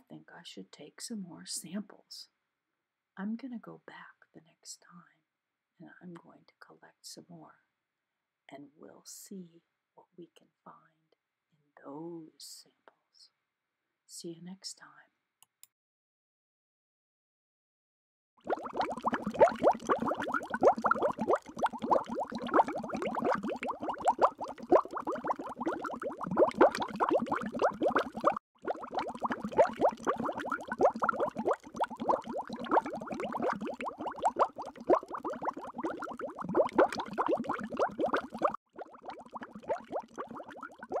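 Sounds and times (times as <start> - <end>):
underwater bubbling: 18.4 - 41.0.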